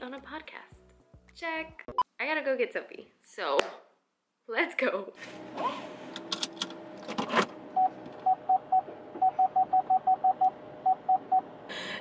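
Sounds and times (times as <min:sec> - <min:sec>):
car warning beeps: 0:07.8 - 0:11.5.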